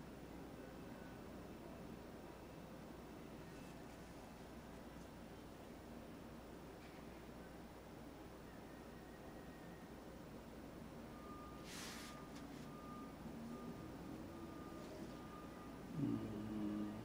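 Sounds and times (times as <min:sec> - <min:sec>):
short hiss: 0:11.6 - 0:12.2.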